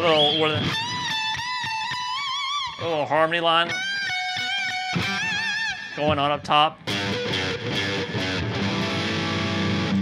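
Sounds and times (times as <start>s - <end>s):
electric guitar lead line: 0.0s - 10.0s.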